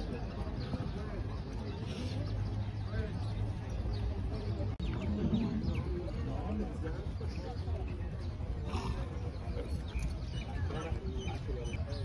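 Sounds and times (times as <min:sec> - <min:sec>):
distant voices murmuring: 0:00.0 - 0:12.0
wind rumble on microphone: 0:00.0 - 0:12.0.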